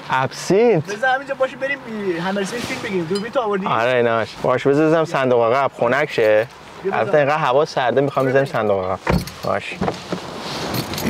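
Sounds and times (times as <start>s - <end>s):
hiss of outside air: 2.2s - 3.2s, 9.9s - 11.0s
car door knocks and rustles: 9.0s - 10.4s.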